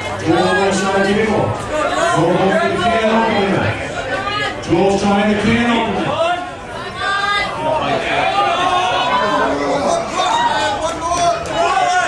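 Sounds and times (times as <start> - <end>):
overlapping voices and chatter: 0.0 - 12.0.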